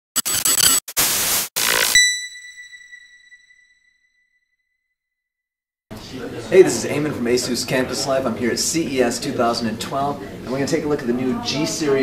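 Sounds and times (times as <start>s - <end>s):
static-like electronic noise bursts: 0.1s - 2.0s
bright ringing ding: 2.0s - 4.0s.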